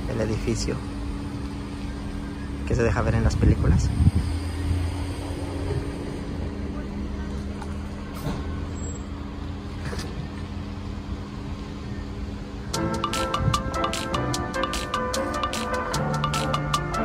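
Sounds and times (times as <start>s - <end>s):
vehicle engine humming: 0.0s - 17.0s
marimba-like background music: 12.8s - 17.0s.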